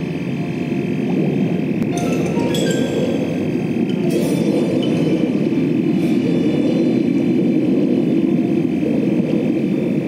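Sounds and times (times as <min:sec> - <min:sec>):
thin steady high tone: 0:01.9 - 0:05.9.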